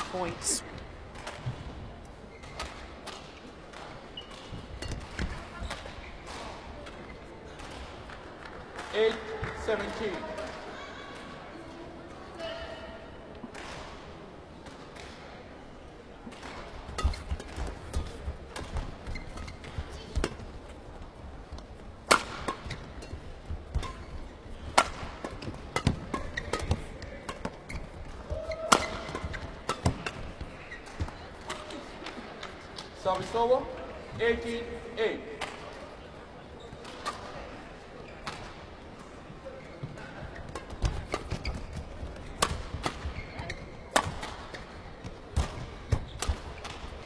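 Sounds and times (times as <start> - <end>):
rackets striking shuttlecock: 16.3 - 20.5, 21.6 - 31.8, 42.3 - 43.2.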